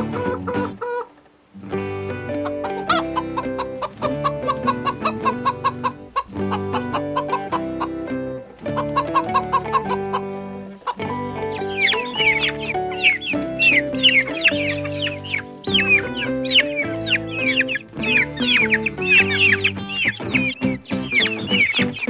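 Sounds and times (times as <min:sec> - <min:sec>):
background music with held chords: 0:00.0 - 0:22.0
chickens clucking: 0:00.0 - 0:22.0.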